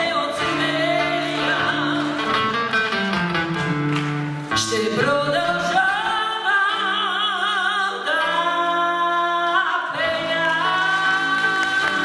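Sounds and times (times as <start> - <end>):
person singing: 0.0 - 2.7, 4.5 - 12.0
acoustic guitar plucking: 0.0 - 9.2.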